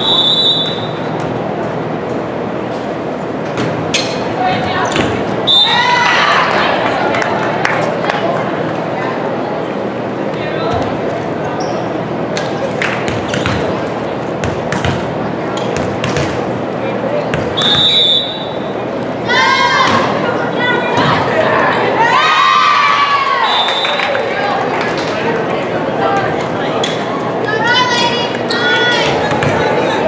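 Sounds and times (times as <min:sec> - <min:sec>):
short high whistle blast: 0:00.0 - 0:00.9
crowd chatter: 0:00.0 - 0:30.0
volleyball struck and bouncing: 0:14.4 - 0:16.4
people shouting: 0:20.8 - 0:23.6.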